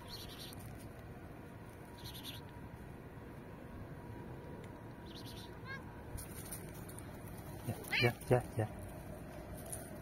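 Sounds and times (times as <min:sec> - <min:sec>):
cat meowing: 0:07.7 - 0:08.2.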